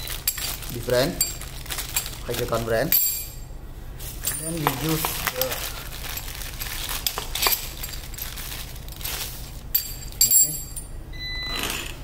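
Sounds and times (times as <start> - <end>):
plastic packaging crinkling: 0.0 - 2.9, 4.5 - 9.7.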